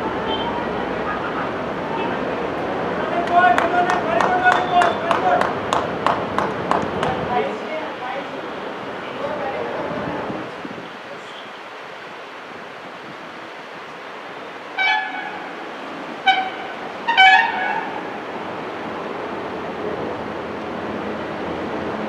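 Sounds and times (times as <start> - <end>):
outdoor background hiss: 0.0 - 22.0
vehicle horn honking: 0.2 - 2.2, 14.8 - 15.5, 16.2 - 18.0.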